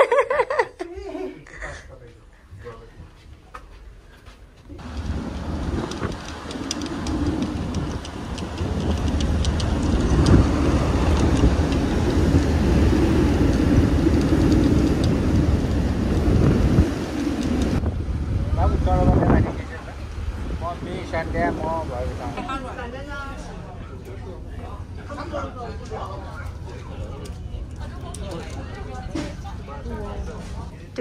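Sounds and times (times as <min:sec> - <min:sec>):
wind buffeting microphone: 0:04.7 - 0:22.4
ship's wake: 0:04.7 - 0:31.0.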